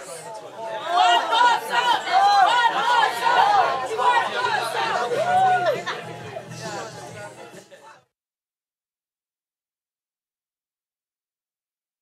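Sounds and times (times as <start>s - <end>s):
people chattering: 0.0s - 8.1s.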